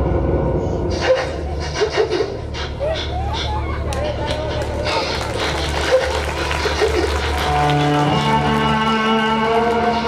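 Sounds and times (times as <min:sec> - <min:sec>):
music with long held notes: 0:04.6 - 0:10.0.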